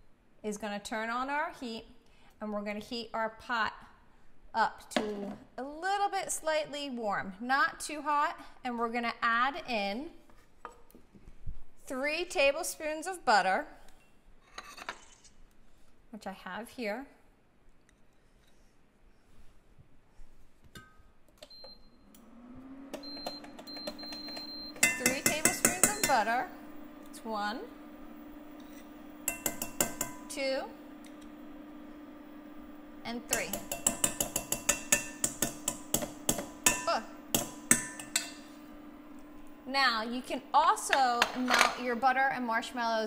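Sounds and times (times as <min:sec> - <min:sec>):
low steady hum: 0:23.1 - 0:43.0
spoon rapping on metal pot: 0:24.8 - 0:26.3, 0:29.3 - 0:30.2, 0:33.3 - 0:38.3.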